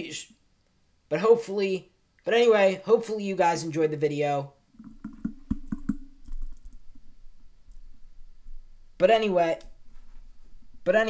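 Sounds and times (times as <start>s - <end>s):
faint low hum: 4.6s - 11.0s.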